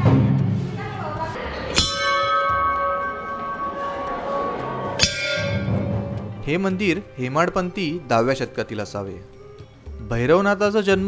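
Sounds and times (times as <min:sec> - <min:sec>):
metal bell struck and ringing: 0:01.7 - 0:07.0.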